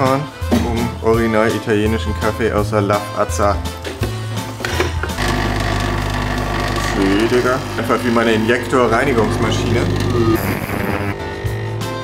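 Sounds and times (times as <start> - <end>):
coffee machine pump buzzing: 4.7 - 11.9.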